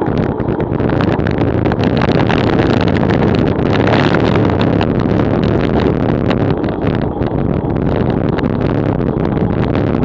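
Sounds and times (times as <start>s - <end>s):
road rumble: 0.0s - 10.0s
wind buffeting microphone: 0.0s - 10.0s.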